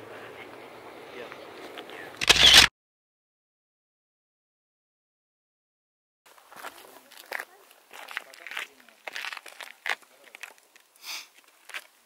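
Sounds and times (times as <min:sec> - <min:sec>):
voices talking: 0:00.0 - 0:02.6
shoes crunching on salt crust: 0:06.4 - 0:12.0.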